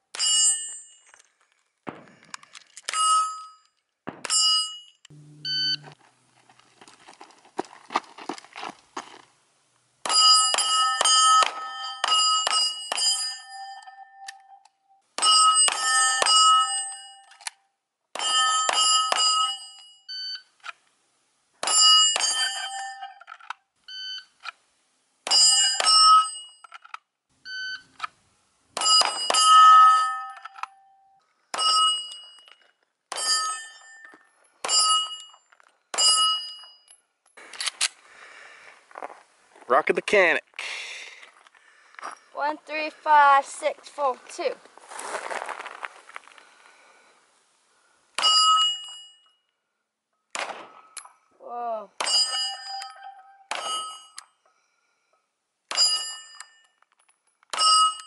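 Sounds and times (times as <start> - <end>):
steel plates ringing: 10.1 - 14.4, 48.2 - 49.4, 52.0 - 54.2
pistol shots: 50.3 - 50.9.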